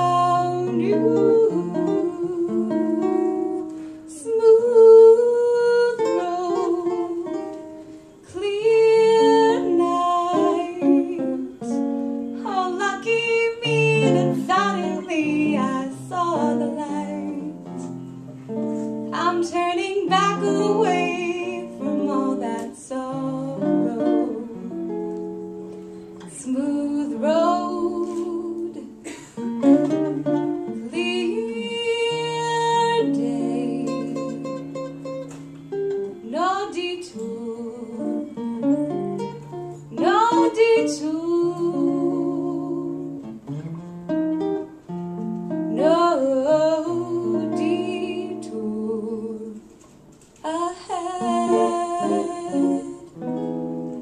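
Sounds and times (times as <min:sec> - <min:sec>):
woman singing: 0:00.0 - 0:18.0, 0:19.1 - 0:25.1, 0:26.2 - 0:35.0, 0:36.1 - 0:43.4, 0:45.7 - 0:49.8, 0:50.4 - 0:53.4
jazz guitar playing: 0:00.0 - 0:50.1, 0:50.9 - 0:54.0.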